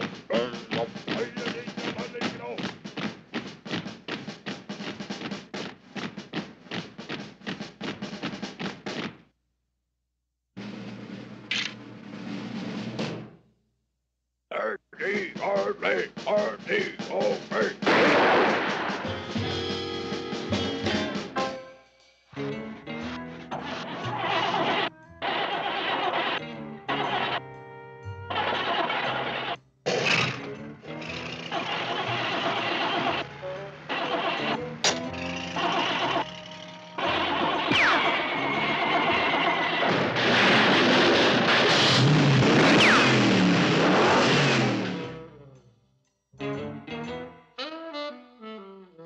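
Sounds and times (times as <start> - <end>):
brass music: 15.0 - 29.6, 30.4 - 41.8, 46.4 - 49.0
jeep engine sound effects: 22.9 - 27.5, 28.3 - 45.4
cartoon music: 30.6 - 40.0, 46.4 - 49.0.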